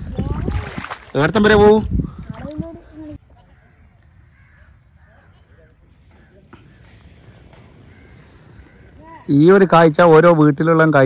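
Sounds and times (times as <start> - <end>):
distant bird calls: 2.0 - 10.2.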